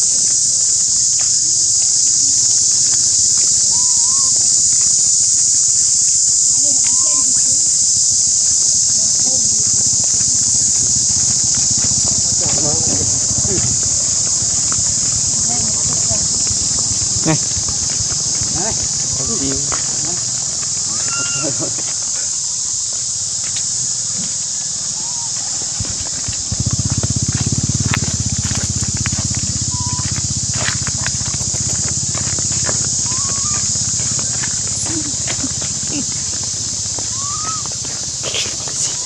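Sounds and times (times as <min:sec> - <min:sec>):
indistinct voices: 0:00.0 - 0:05.6, 0:06.2 - 0:22.4, 0:24.2 - 0:39.0
high-pitched insect chorus: 0:00.0 - 0:39.0
rising-and-falling calls: 0:10.5 - 0:22.2, 0:24.9 - 0:39.0.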